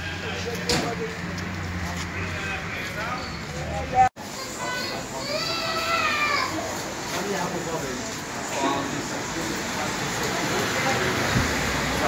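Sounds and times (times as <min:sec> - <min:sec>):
voices nearby: 0:00.0 - 0:12.0.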